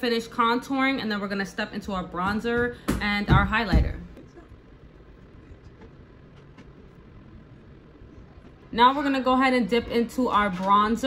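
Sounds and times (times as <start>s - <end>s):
low steady background rumble: 0.0s - 11.0s.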